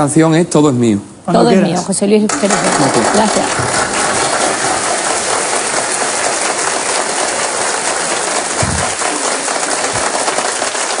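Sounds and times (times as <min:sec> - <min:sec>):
audience applauding: 0:02.3 - 0:11.0.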